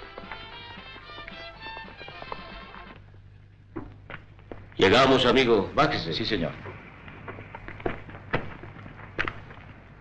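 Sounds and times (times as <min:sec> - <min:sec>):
crackly film soundtrack hiss: 0:00.0 - 0:10.0
steady low hum: 0:00.0 - 0:10.0.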